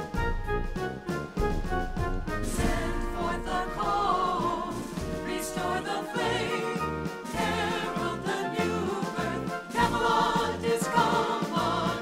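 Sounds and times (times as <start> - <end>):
instrumental accompaniment: 0.0 - 12.0
choir singing with vibrato: 2.4 - 12.0.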